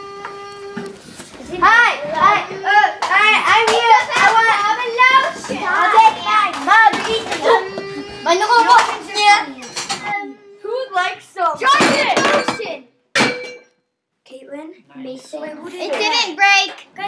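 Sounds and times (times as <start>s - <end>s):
children shrieking excitedly: 7.0s - 9.6s
glass clinking: 12.2s - 13.8s.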